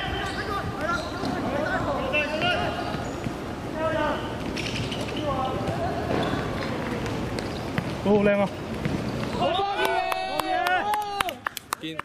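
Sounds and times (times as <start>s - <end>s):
player shouting: 9.4s - 11.4s.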